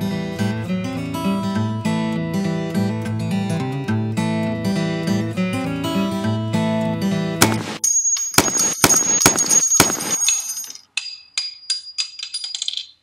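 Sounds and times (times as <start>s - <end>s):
acoustic guitar music: 0.0s - 7.8s
sharp gunshot cracks: 7.4s - 7.8s
shell casing bouncing on floor: 7.4s - 13.0s
high metallic ring: 7.8s - 12.2s.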